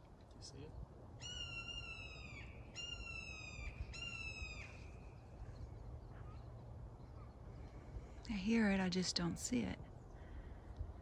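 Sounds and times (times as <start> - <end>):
bird calling: 1.2 - 7.8.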